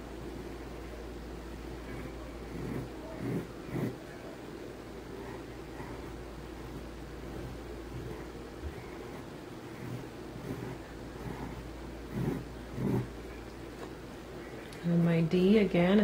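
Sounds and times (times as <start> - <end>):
low background hum: 0.0 - 16.0
pencil strokes on paper: 5.2 - 13.1.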